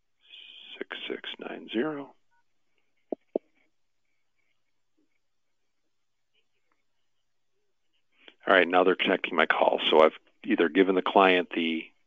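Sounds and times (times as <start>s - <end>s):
faint touch-tone beep: 3.1s - 3.4s.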